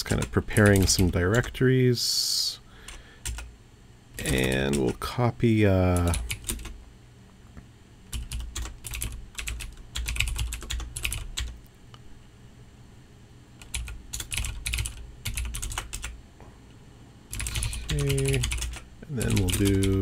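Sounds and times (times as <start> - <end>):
computer keyboard typing: 0.0 - 1.6, 2.9 - 3.5, 4.2 - 5.0, 5.9 - 6.8, 8.1 - 11.6, 13.6 - 16.2, 17.3 - 20.0
person's voice: 0.0 - 2.6, 4.2 - 6.2, 17.5 - 20.0.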